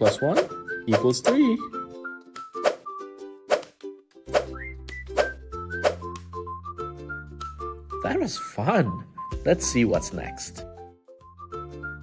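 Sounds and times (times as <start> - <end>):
cheerful children's music: 0.0 - 12.0.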